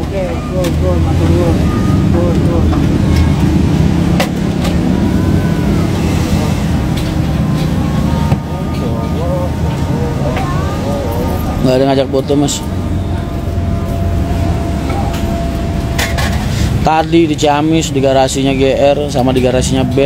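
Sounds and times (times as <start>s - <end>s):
diesel bus engine idling: 0.0s - 20.0s
faint voices: 0.0s - 20.0s.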